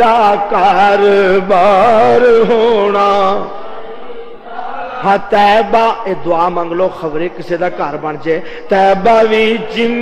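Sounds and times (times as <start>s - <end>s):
man singing: 0.0s - 3.6s, 4.9s - 10.0s.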